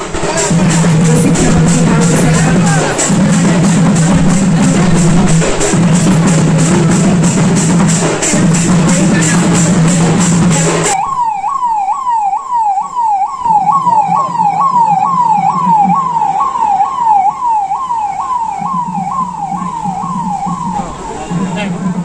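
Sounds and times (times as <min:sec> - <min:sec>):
drum-led music: 0:00.0 - 0:22.0
vehicle siren yelping: 0:00.0 - 0:22.0.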